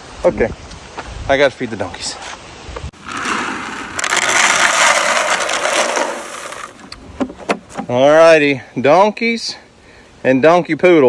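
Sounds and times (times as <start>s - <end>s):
feed pellets poured from bucket: 3.0s - 6.8s.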